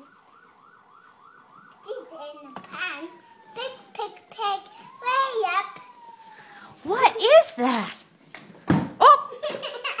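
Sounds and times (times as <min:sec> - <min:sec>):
thump: 0:08.6 - 0:09.0
small children laughing: 0:09.0 - 0:10.0.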